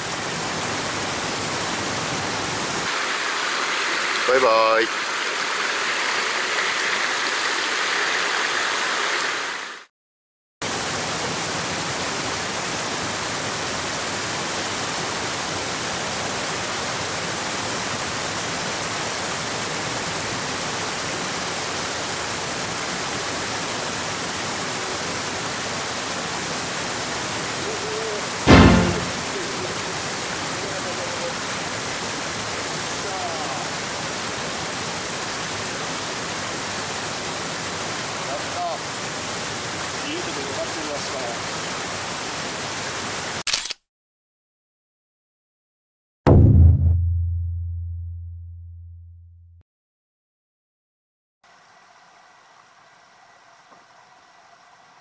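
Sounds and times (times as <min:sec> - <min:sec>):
shallow stream running: 0:00.0 - 0:09.9, 0:10.6 - 0:43.4
water rushing over a weir: 0:00.0 - 0:09.9, 0:10.6 - 0:43.4
loud thump: 0:28.5 - 0:29.4, 0:46.3 - 0:48.9.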